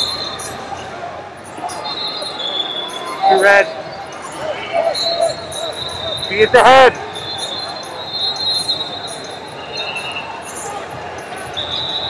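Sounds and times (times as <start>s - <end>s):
background murmur: 0.0s - 12.0s
distant shouted voices: 0.0s - 12.0s.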